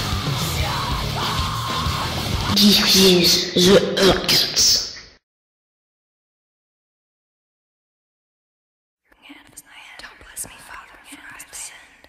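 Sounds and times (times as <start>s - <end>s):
person whispering: 2.5s - 5.0s, 9.1s - 12.0s.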